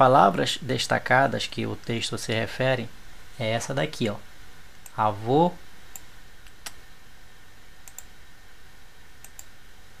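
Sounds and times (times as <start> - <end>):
steady low hiss: 0.0 - 10.0
short light clicks: 7.8 - 8.1, 9.2 - 9.5.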